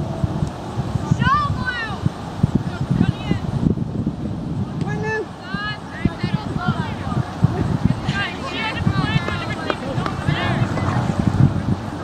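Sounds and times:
distant voices shouting: 5.0s - 12.0s.

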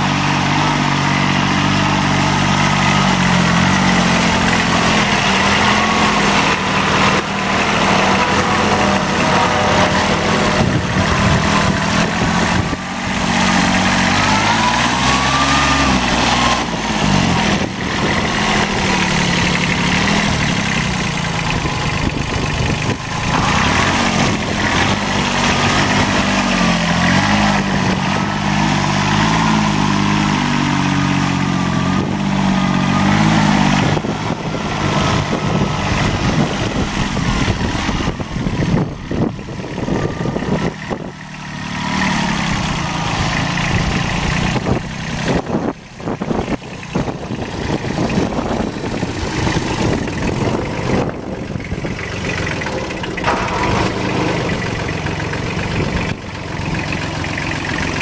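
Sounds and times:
tractor diesel engine running: 0.0s - 58.0s.

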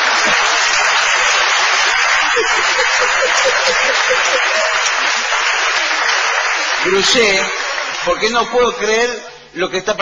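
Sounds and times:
audience laughing and applauding: 0.0s - 8.3s
person laughing in bursts: 1.8s - 5.0s.

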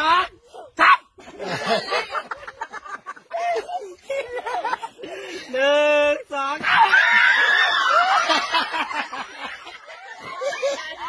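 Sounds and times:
women and girls laughing and shrieking: 1.1s - 5.5s, 6.6s - 11.0s.

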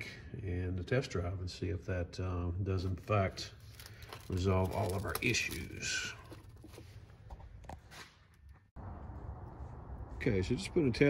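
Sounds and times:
clicks and handling noise: 3.6s - 8.7s.

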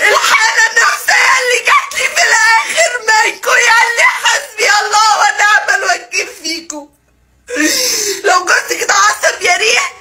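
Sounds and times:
woman crying and wailing: 0.0s - 6.3s, 7.5s - 9.6s.

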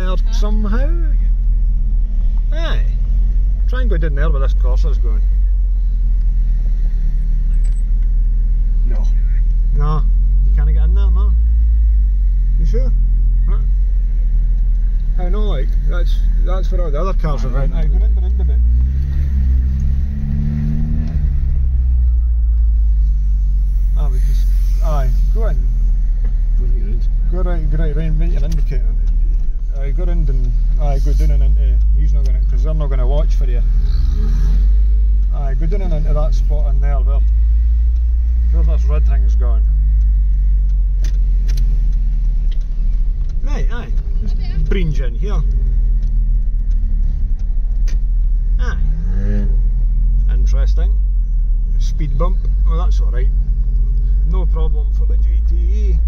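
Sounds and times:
car engine low rumble: 0.0s - 56.0s.

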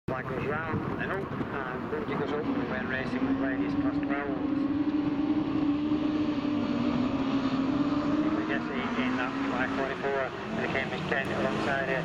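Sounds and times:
racing car engines running hard: 0.2s - 12.0s.

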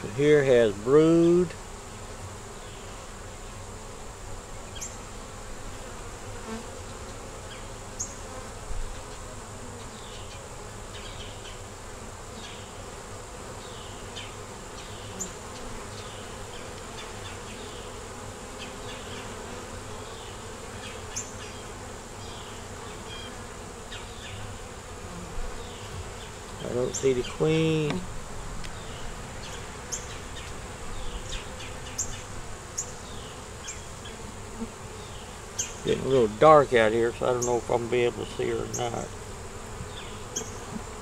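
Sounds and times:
bees buzzing: 0.0s - 41.0s.

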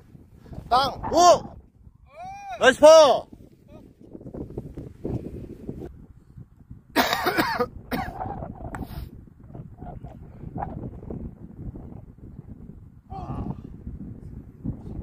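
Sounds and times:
wind buffeting microphone: 0.0s - 15.0s
person coughing: 7.0s - 8.2s.

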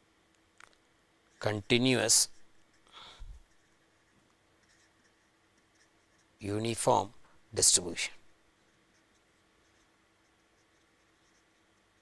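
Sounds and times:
marker scratching on paper: 1.3s - 12.0s.

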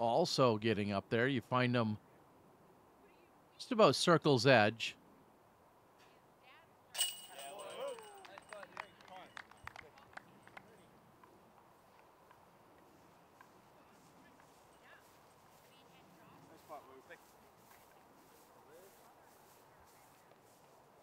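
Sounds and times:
chains rattling and jingling: 7.0s - 8.2s
disc hitting metal chains: 7.0s - 8.2s.

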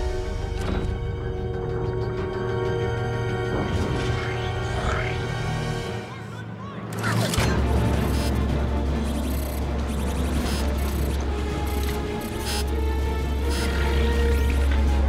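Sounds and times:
deep bass drone music: 0.0s - 6.2s, 6.9s - 15.0s.

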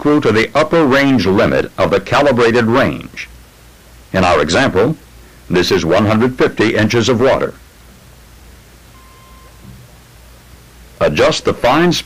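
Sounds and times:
recording hiss and hum: 0.0s - 12.0s
faint steady tone: 7.2s - 11.9s.

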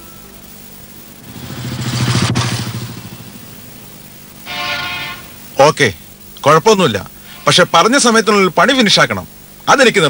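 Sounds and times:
vehicle engine passing by: 1.2s - 4.0s.

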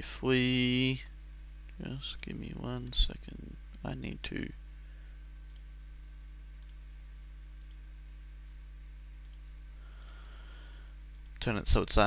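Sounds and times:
low electrical hum: 0.0s - 12.0s
computer mouse clicks: 5.5s - 5.7s, 6.6s - 6.8s, 7.6s - 7.8s, 9.2s - 9.4s, 11.1s - 11.4s.

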